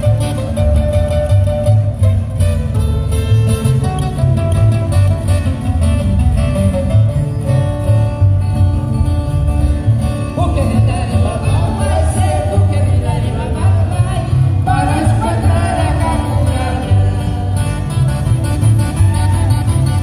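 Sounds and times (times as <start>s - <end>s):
acoustic guitars and double bass: 0.0s - 20.0s
person singing: 10.4s - 17.6s.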